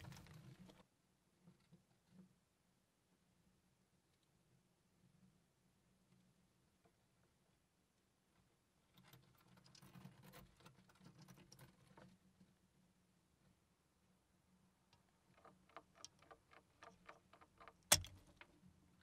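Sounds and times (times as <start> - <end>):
mice scratching and pattering: 0.0 - 0.8, 8.9 - 12.6
small clicks: 14.9 - 18.7
mouse trap snapping: 17.8 - 18.3.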